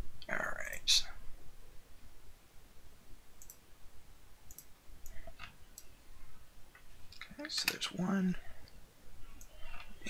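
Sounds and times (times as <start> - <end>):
computer mouse clicks: 3.4 - 3.6, 4.5 - 5.9.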